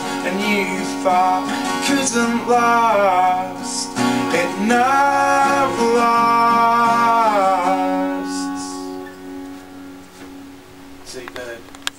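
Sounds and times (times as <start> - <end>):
acoustic guitar chord ringing: 0.0 - 11.9.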